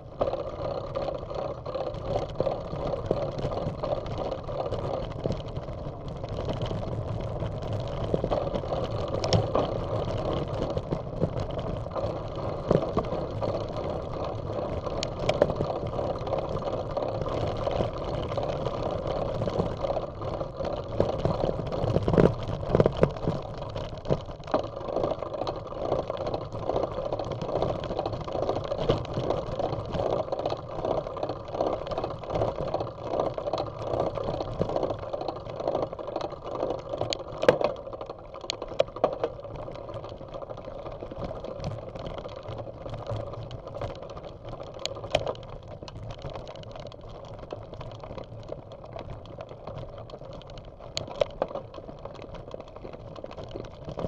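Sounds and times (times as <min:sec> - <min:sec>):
bicycle rattling and knocks: 0:00.0 - 0:54.0
bicycle tyres rumbling on gravel: 0:00.0 - 0:54.0.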